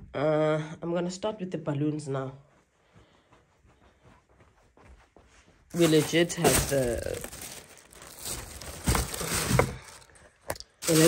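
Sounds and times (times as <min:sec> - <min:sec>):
plastic bag rustling: 0:05.7 - 0:11.0.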